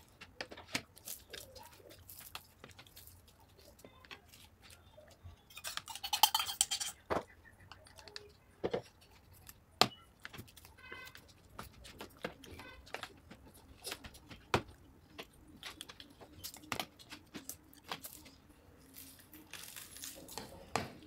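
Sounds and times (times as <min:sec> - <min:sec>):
steel spoons clinking on plates: 0:05.5 - 0:07.0.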